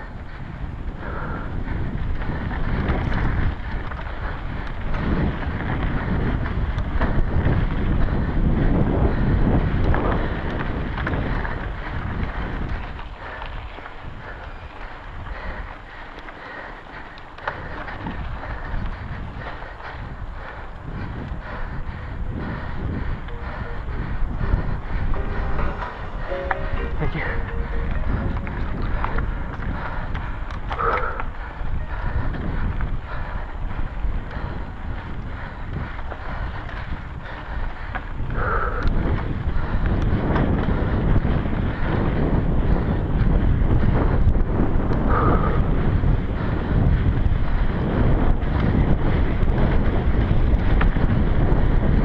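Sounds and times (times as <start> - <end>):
bike clicks and rattles: 0.0 - 25.2, 27.8 - 52.0
bike tyre rumble on trail: 0.0 - 52.0
wind buffeting microphone: 0.0 - 52.0.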